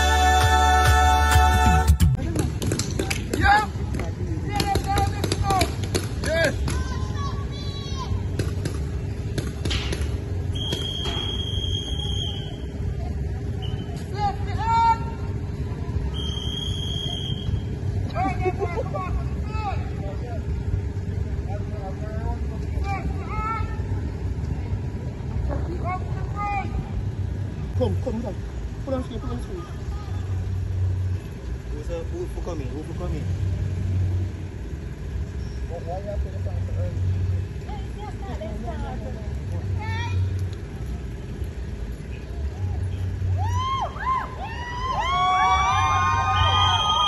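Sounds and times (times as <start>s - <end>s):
choral song: 0.0s - 2.1s.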